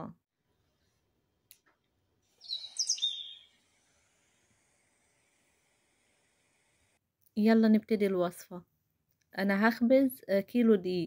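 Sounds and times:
bird chirping: 2.3 - 3.8.

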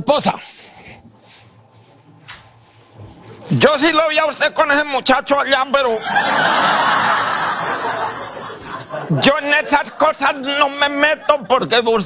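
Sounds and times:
studio audience laughing: 5.8 - 11.8.

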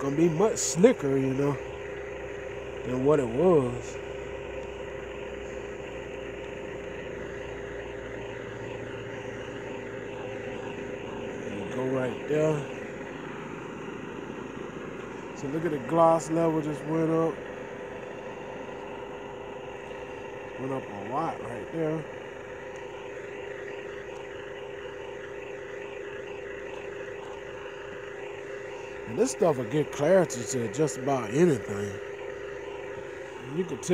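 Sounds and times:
mechanical humming drone: 0.0 - 33.9.

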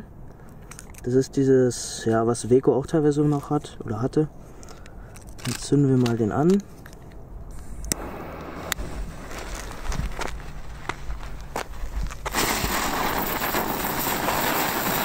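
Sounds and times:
firework sparks hissing: 12.2 - 15.0.

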